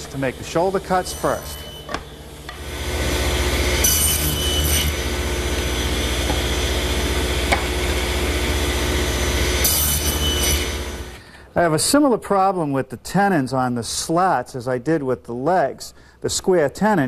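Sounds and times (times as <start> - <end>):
saw blade cutting wood: 0.0 - 11.2
table saw running: 0.0 - 11.2.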